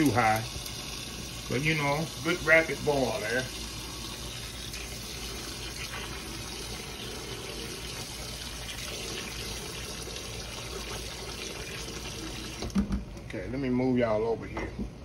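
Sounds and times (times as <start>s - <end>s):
faucet water running into pot: 0.0s - 12.9s.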